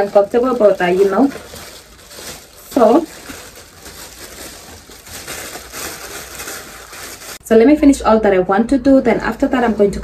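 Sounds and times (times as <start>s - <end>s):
plastic bag crinkling: 0.0s - 7.4s.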